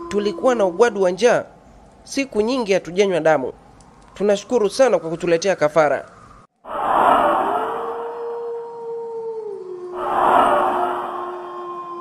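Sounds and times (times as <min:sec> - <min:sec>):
eerie drawn-out howl: 0:00.0 - 0:01.4, 0:06.7 - 0:12.0.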